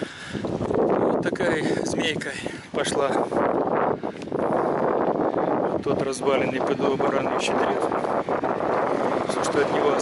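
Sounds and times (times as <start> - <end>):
wind buffeting microphone: 0.0 - 10.0
man's voice: 5.8 - 7.9, 9.2 - 10.0.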